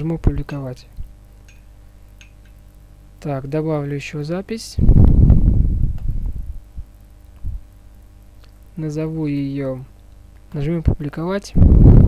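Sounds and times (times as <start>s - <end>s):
low muffled rumble: 4.8s - 7.8s.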